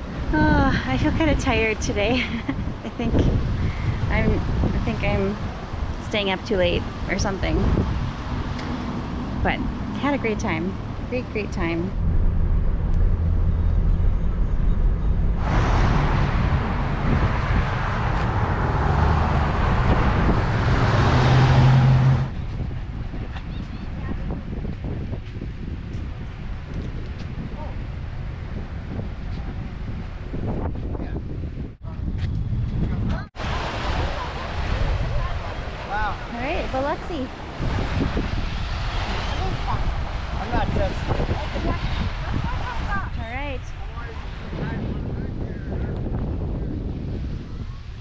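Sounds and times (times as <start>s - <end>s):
road traffic noise: 0.0s - 48.0s
wind rushing on microphone: 0.0s - 48.0s
small waves washing onto beach: 33.3s - 45.0s.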